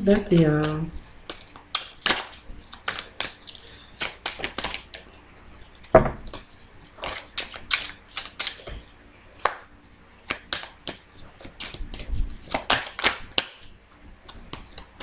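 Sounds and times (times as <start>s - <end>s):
cards being shuffled: 0.1s - 5.1s, 5.7s - 9.6s, 10.2s - 15.0s
loud knock: 6.0s - 6.2s.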